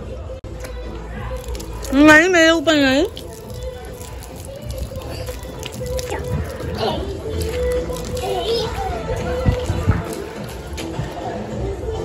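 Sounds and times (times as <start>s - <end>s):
toddler babbling: 8.1s - 9.0s.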